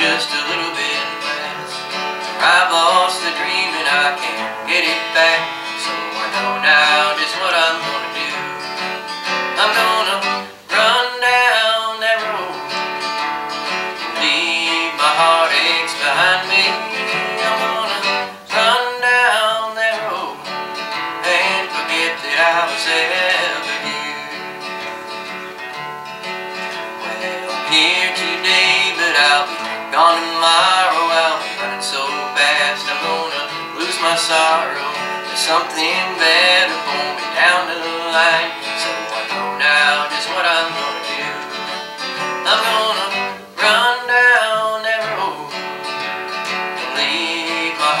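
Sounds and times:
man singing: 0.0s - 24.9s, 26.7s - 48.0s
strummed acoustic guitar: 0.0s - 48.0s.

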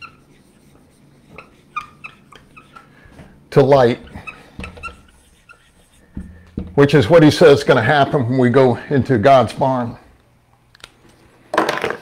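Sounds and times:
marker squeaking on whiteboard: 0.0s - 7.3s.

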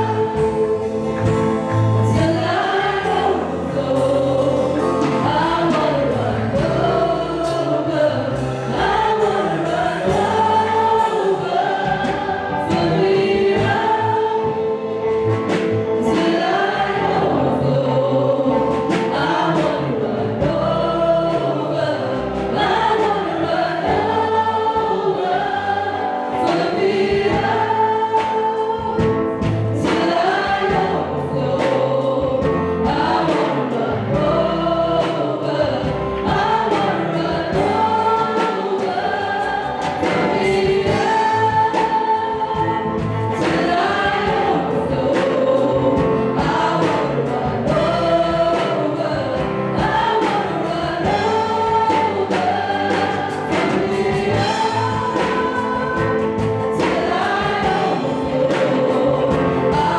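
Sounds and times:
electric guitar and band: 0.0s - 59.9s
group singing gospel song: 0.0s - 59.9s.

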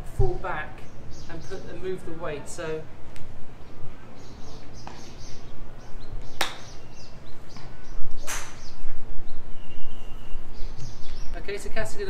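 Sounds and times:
birds chirping: 0.2s - 12.0s
golf club striking ball: 6.4s - 6.7s, 8.2s - 8.7s.

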